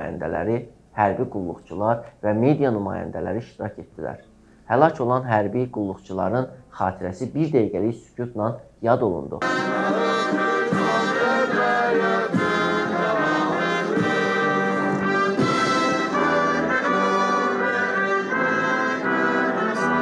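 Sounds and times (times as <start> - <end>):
military brass band playing: 9.4 - 20.0.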